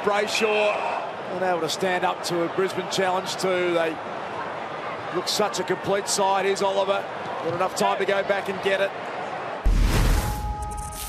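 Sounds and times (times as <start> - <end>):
broadcast crowd noise: 0.0 - 9.7
deep whooshing hit: 9.7 - 10.5.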